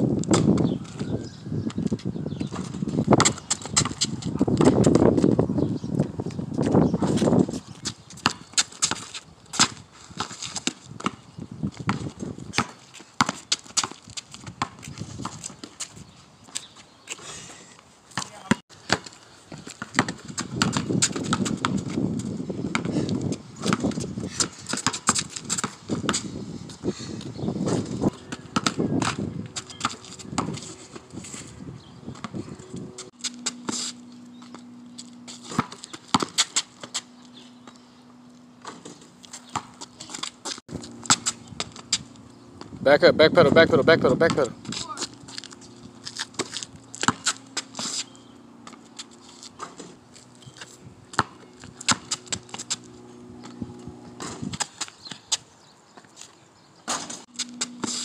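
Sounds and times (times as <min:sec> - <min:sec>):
basketball bouncing on asphalt: 0:00.0 - 0:17.2, 0:18.1 - 0:42.8, 0:44.1 - 0:55.4, 0:56.9 - 0:58.0
steady low hum: 0:18.7 - 0:55.8, 0:57.0 - 0:58.0.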